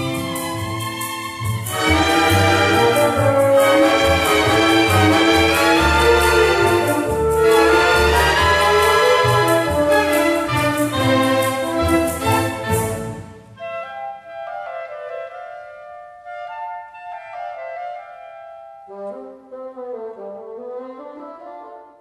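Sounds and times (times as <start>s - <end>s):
symphony orchestra playing: 0.0s - 22.0s.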